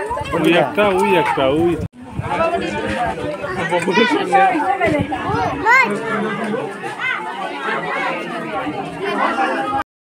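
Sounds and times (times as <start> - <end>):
people chattering: 0.0 - 9.9.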